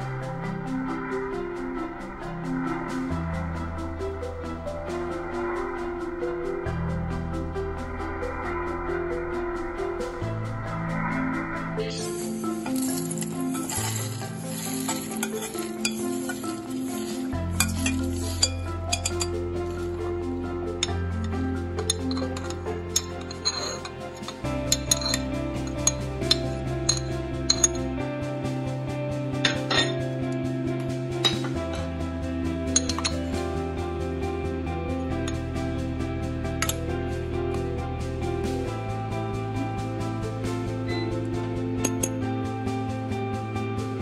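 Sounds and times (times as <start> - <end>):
background music: 0.0 - 44.0
spoon clinking on steel jar: 12.1 - 19.2.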